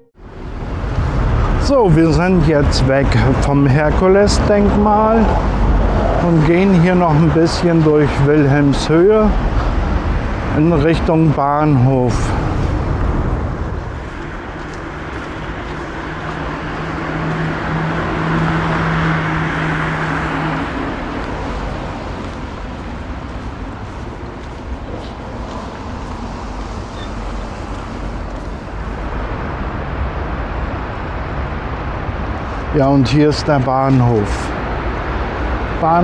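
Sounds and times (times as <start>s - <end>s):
cars passing: 0.0s - 36.0s
vehicle engine hum: 0.0s - 36.0s.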